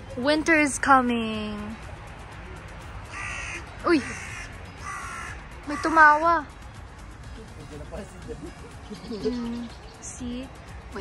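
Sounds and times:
crow cawing: 0:03.1 - 0:06.2.

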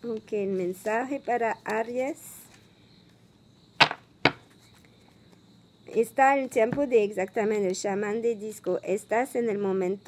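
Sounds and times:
cards tapped on wooden table: 0:03.8 - 0:04.5.

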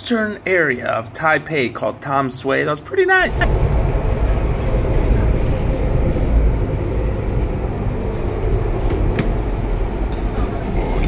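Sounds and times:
rail car rumbling: 0:03.4 - 0:11.0.

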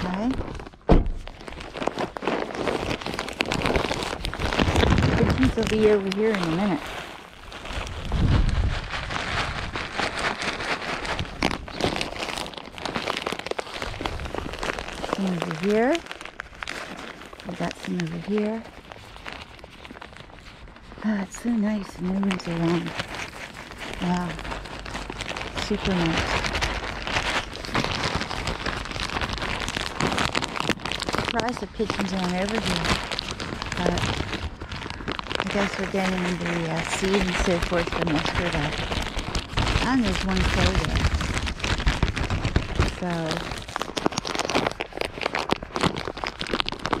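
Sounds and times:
plastic bag crinkling: 0:00.0 - 0:47.0
small irregular ticks: 0:21.6 - 0:47.0.

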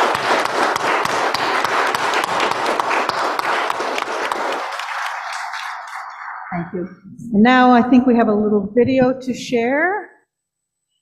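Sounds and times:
crowd applauding: 0:00.0 - 0:06.7.

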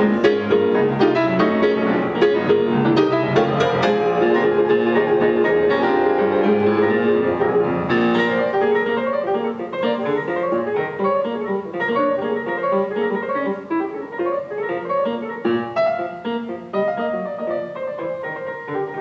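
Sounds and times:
jazz piano duet: 0:00.0 - 0:19.0.

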